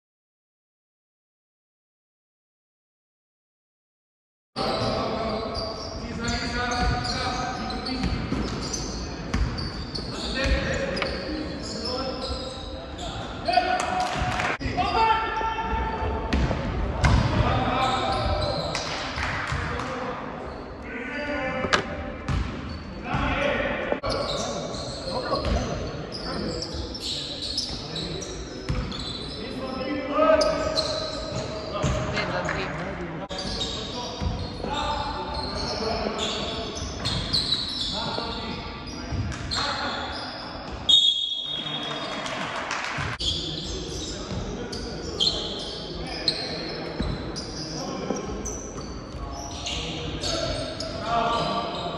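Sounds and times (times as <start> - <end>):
basketball bouncing on court: 8.0 - 8.7, 9.3 - 9.7, 16.3 - 17.5, 21.7 - 22.8.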